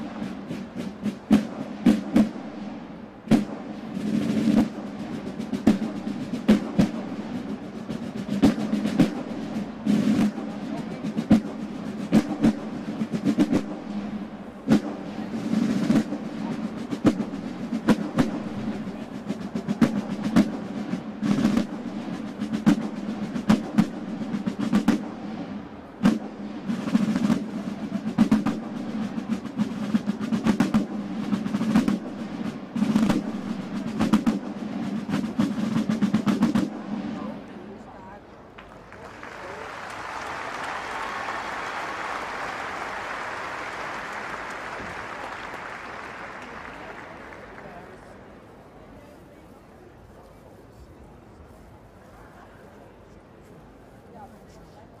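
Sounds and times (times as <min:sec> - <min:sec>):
marching field drums: 0:00.0 - 0:49.0.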